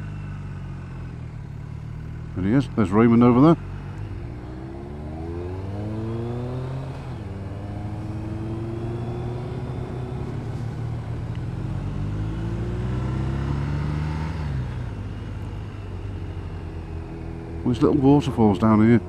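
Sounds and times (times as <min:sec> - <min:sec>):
motorcycle engine accelerating: 0:00.0 - 0:19.0.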